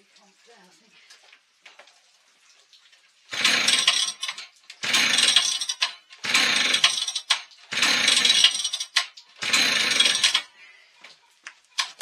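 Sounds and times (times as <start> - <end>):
chainsaw revving in bursts: 3.3 - 10.5.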